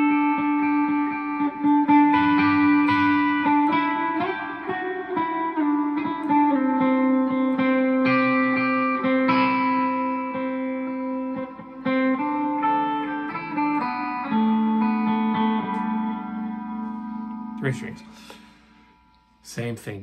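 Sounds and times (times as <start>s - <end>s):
clean electric guitar picking notes: 0.0s - 19.4s.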